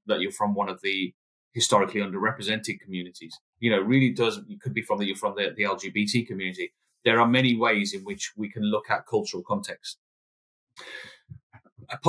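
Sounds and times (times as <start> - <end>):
person breathing in: 10.8 - 11.4.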